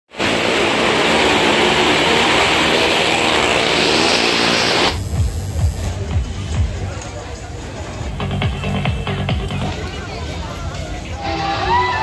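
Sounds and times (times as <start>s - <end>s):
car engines running hard: 0.1s - 11.2s
fair music with thumping beat: 4.9s - 11.4s.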